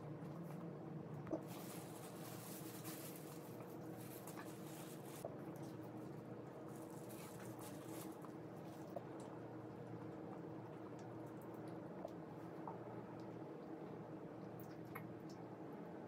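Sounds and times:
steady low hum: 0.0 - 16.0
crispy food chewing: 0.2 - 15.4
plastic gloves rustling: 1.3 - 9.0.

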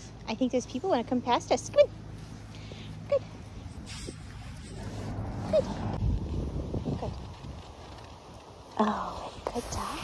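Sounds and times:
wind rumbling on microphone: 3.4 - 10.0.

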